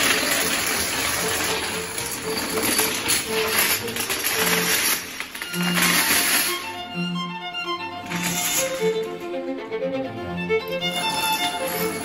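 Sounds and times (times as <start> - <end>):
dominoes toppling clatter: 0.0 - 6.7, 8.1 - 9.0, 10.9 - 12.0
faint music: 0.0 - 12.0.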